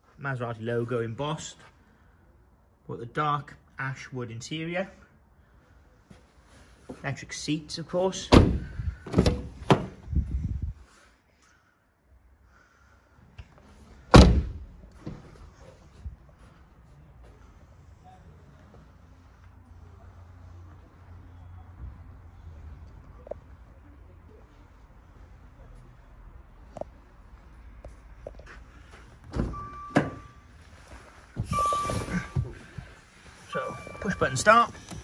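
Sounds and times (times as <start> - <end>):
car door thumping shut: 8.3 - 10.0, 14.1 - 14.6
car electronic chime: 29.5 - 30.5, 31.4 - 32.6, 33.5 - 35.0.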